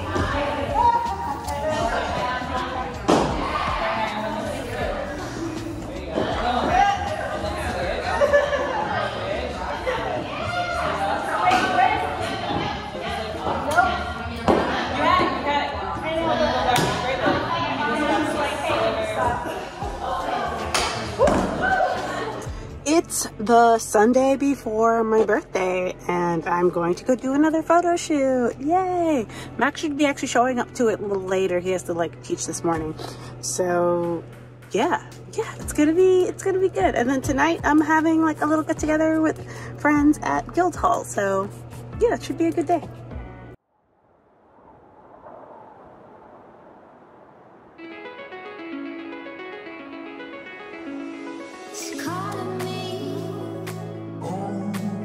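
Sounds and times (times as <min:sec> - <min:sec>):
keyboard music: 0:47.8 - 0:55.0.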